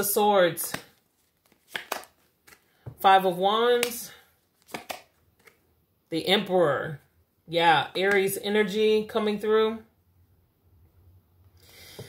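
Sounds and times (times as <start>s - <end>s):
cards clicking: 0.6s - 2.7s, 4.6s - 5.6s.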